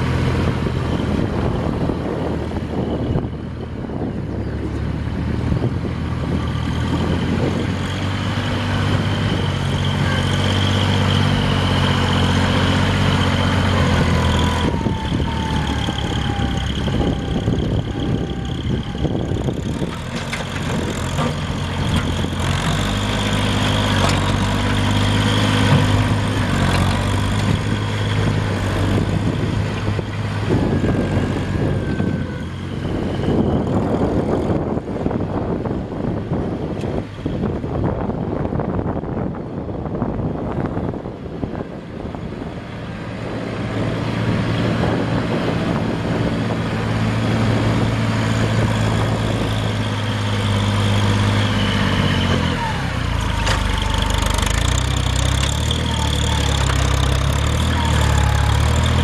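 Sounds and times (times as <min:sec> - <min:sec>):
tractor diesel engine running: 0:00.0 - 0:59.0.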